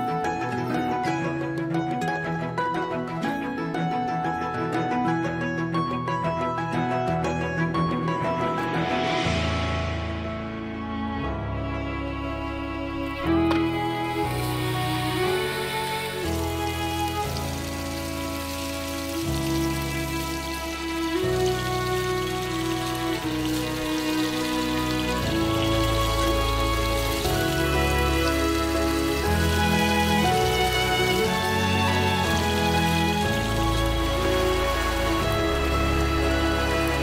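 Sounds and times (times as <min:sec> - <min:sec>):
slow background music: 0:00.0 - 0:37.0
meat sizzling in a pan: 0:14.2 - 0:37.0.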